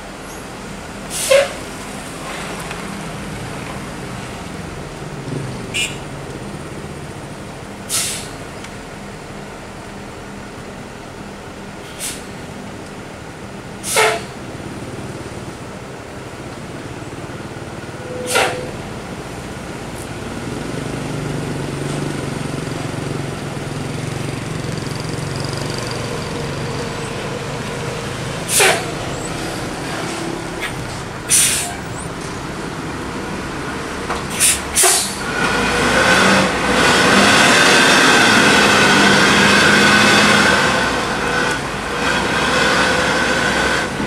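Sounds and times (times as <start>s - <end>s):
bus diesel engine running: 0.0s - 44.0s
air brake hisses: 1.1s - 1.6s, 7.9s - 8.4s, 11.9s - 12.3s, 13.8s - 14.3s, 18.2s - 18.7s, 28.5s - 28.9s, 31.3s - 31.8s, 34.3s - 35.3s.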